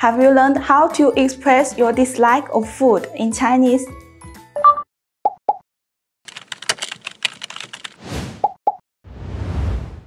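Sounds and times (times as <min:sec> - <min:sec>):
fast run of clicks: 0:06.3 - 0:08.0
whoosh: 0:09.1 - 0:10.0.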